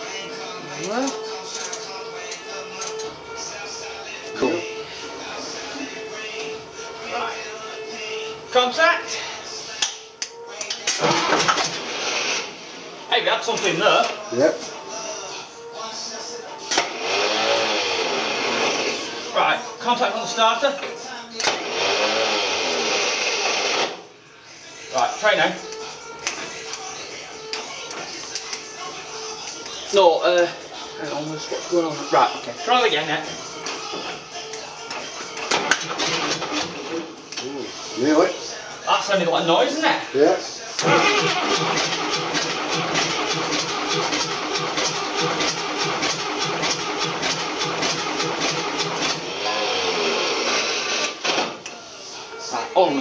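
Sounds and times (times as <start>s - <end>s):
starter motor cranking diesel engine: 11.0s - 12.5s, 16.7s - 19.1s, 21.4s - 24.0s, 35.4s - 37.1s, 40.8s - 51.5s.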